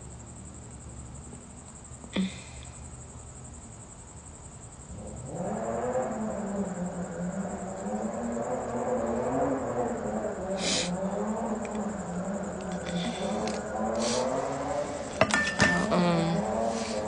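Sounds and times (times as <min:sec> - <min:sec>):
woman's wordless wavering voice: 0:12.6 - 0:13.5, 0:15.8 - 0:16.9.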